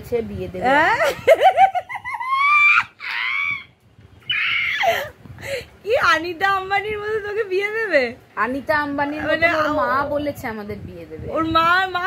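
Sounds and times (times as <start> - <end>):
woman squealing with laughter: 1.8 - 3.7, 4.3 - 5.1.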